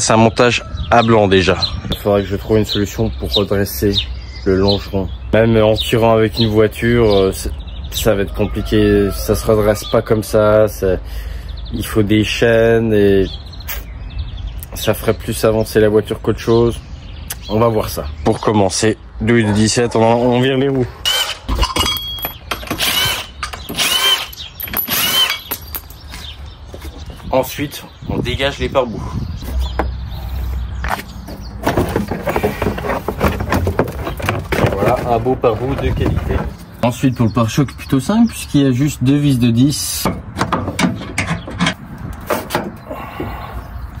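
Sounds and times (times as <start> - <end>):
power wrench whine: 21.0 - 25.8
plastic bumper clicks and knocks: 40.0 - 42.8.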